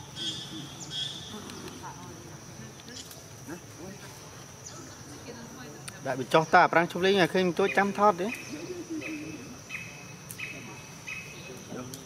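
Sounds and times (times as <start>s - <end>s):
insect chirps: 0.0s - 12.0s
insects droning: 0.0s - 12.0s.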